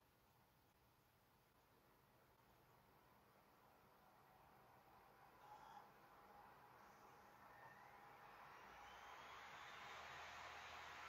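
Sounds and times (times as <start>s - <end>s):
laptop cooling fan spinning: 0.1s - 11.0s
thin rising whine: 2.7s - 11.0s.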